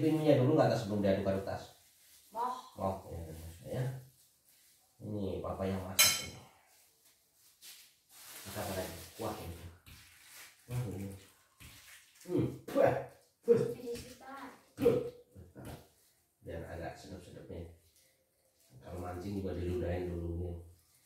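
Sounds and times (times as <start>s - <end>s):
people speaking: 0.0s - 1.6s, 5.0s - 6.0s, 8.5s - 9.6s, 10.7s - 11.2s, 12.3s - 15.7s, 16.5s - 17.7s, 18.8s - 20.6s.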